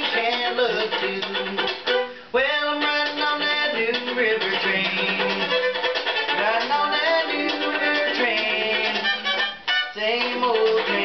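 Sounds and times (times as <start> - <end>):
string band with fiddle melody: 0.0 - 11.0.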